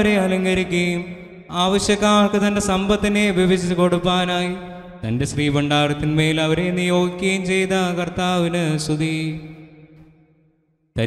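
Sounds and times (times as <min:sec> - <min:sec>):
man chanting: 0:00.0 - 0:09.9.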